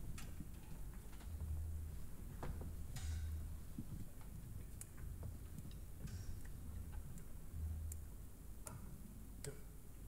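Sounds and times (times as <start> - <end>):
faint low hum: 0.0 - 10.0
soft clicks: 4.7 - 9.6.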